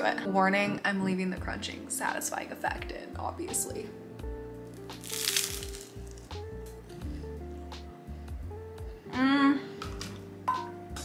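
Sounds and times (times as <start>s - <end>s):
background music: 0.0s - 11.0s
rice cake crunching: 4.8s - 6.3s.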